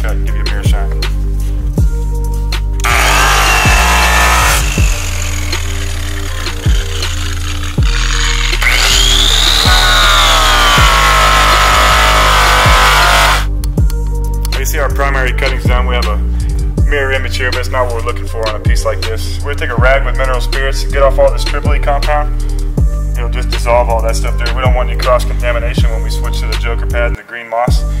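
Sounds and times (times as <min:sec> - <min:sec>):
hip-hop music with steady beat: 0:00.1 - 0:05.0, 0:07.8 - 0:27.0
rotary buffer whining: 0:02.8 - 0:13.5.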